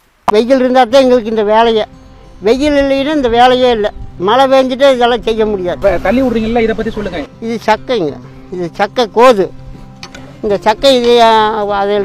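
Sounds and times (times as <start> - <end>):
background music: 0.2 - 12.0.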